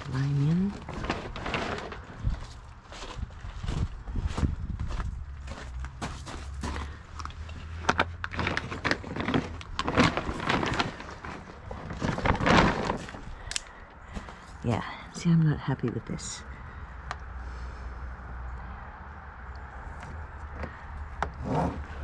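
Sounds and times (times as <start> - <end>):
plastic sheeting rustling: 0.0 - 3.1, 8.3 - 13.5.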